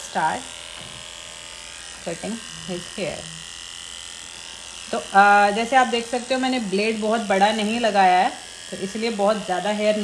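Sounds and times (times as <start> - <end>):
electric hair clipper buzzing: 0.0 - 10.0.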